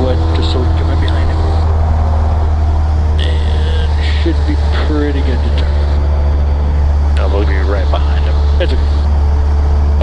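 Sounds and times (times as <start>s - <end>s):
high steady tone: 0.0s - 10.0s
propeller aircraft engine droning: 0.0s - 10.0s.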